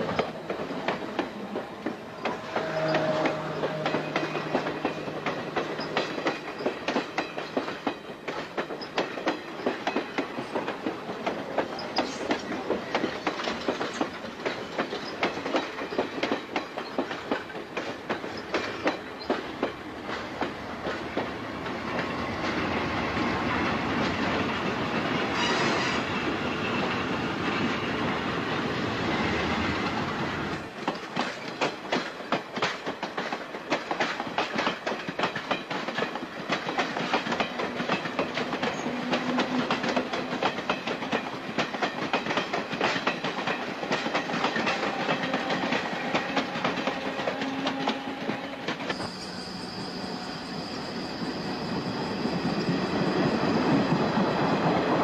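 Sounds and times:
wheels clicking over rail joints: 0:00.0 - 0:22.7, 0:29.8 - 0:49.0
train cars passing: 0:00.0 - 0:55.0.

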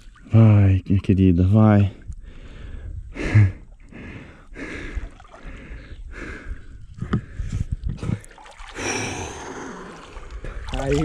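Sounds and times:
water splashing around a person: 0:05.0 - 0:05.6, 0:08.2 - 0:11.0.

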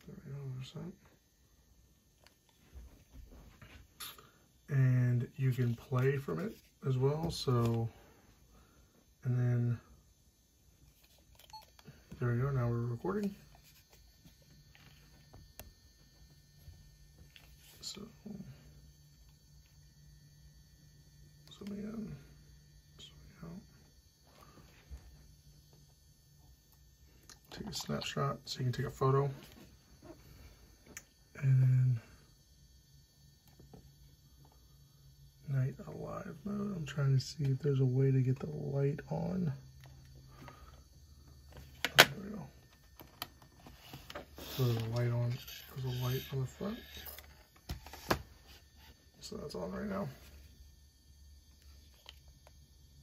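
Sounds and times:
low steady hum: 0:00.0 - 0:53.0.

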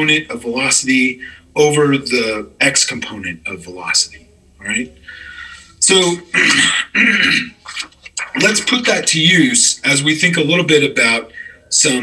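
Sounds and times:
man clearing his throat: 0:06.3 - 0:07.6.

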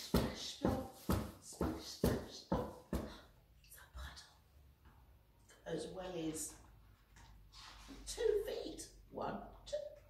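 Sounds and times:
woman reading aloud: 0:00.0 - 0:03.2, 0:05.6 - 0:06.6, 0:08.0 - 0:10.0.

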